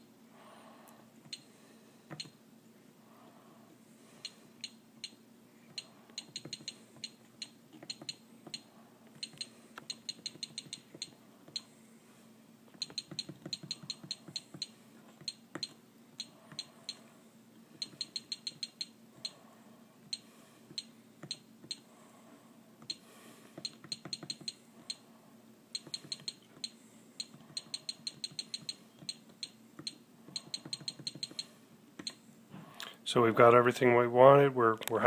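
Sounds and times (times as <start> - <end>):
keypad beeps with clicks: 5.8 - 8.6, 9.2 - 11.7, 12.8 - 17.0, 17.8 - 18.9, 23.6 - 24.6, 25.8 - 32.2.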